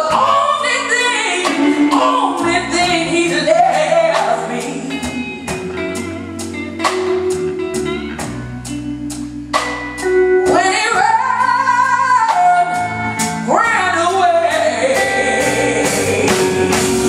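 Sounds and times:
woman singing long notes: 0:00.0 - 0:05.6, 0:10.5 - 0:16.8
blues band playing: 0:00.0 - 0:17.0.

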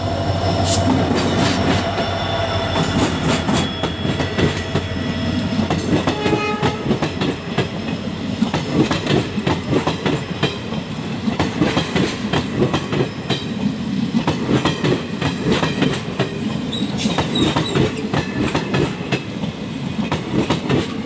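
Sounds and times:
train wheels clattering over rails: 0:00.4 - 0:21.0.

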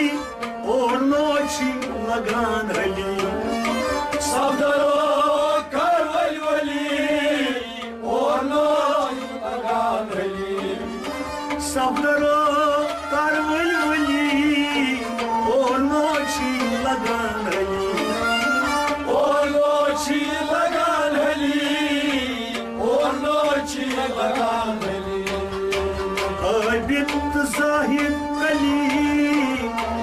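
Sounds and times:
harmonium: 0:00.0 - 0:30.0
men singing devotional song: 0:00.0 - 0:30.0.

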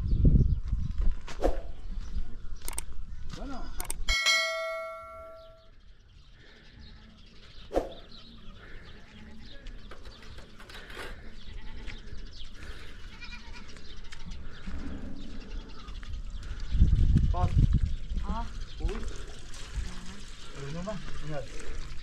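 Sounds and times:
faint animal and outdoor sounds: 0:00.0 - 0:22.0
farm animal bleating: 0:11.3 - 0:14.4.

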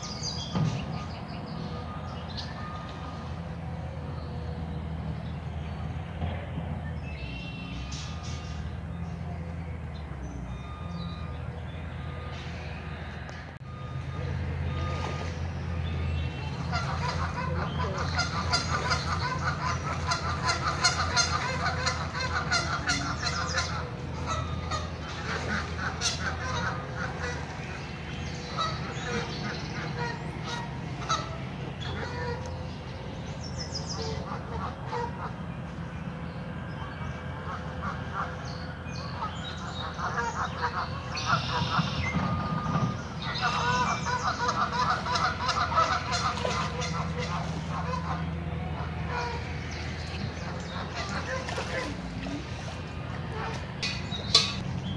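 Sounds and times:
steady low hum: 0:00.0 - 0:54.9
geese honking: 0:10.3 - 0:54.9.

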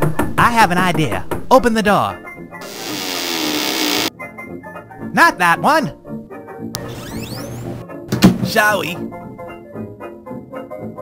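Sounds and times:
door creaking open: 0:02.6 - 0:04.1, 0:06.8 - 0:07.8.

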